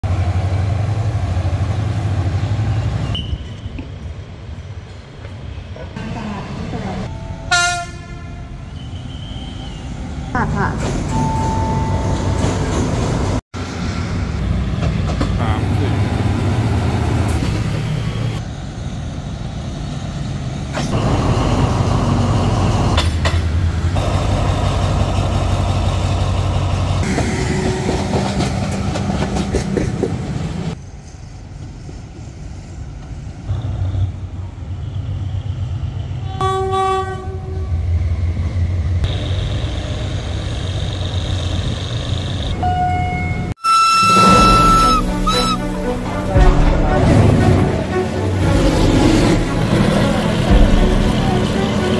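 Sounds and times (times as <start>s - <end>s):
diesel locomotive engine rumble: 0.0s - 51.9s
locomotive horn: 7.4s - 9.6s, 36.2s - 37.8s, 42.6s - 51.9s
train carriages rolling on rails: 10.4s - 19.5s, 20.1s - 34.5s, 46.3s - 51.9s.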